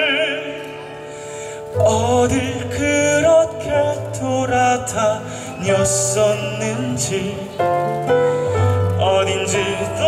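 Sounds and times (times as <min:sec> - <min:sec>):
instrumental accompaniment: 0:00.0 - 0:10.0
man singing a slow ballad: 0:00.0 - 0:10.0.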